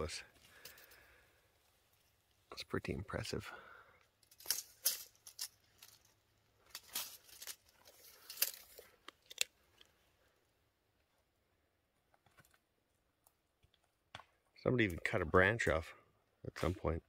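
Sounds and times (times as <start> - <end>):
footsteps crunching dry twigs: 4.3 - 9.6.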